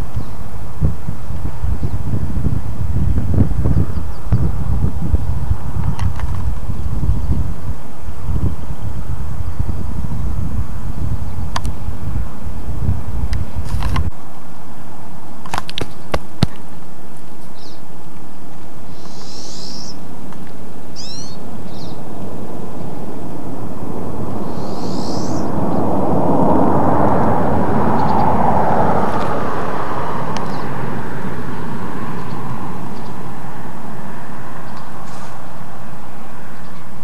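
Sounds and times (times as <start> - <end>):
steady rushing noise: 0.0 - 37.0
high bird chirps: 18.9 - 20.0, 21.0 - 22.0, 24.4 - 25.5.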